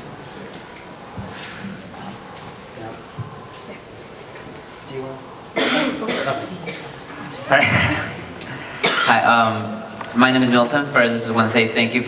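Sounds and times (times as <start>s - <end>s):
person coughing: 5.6s - 7.0s, 8.8s - 9.2s.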